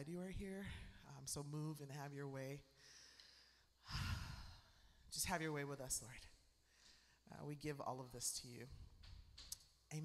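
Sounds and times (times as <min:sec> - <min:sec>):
breath into microphone: 0:02.8 - 0:05.1, 0:06.6 - 0:07.2.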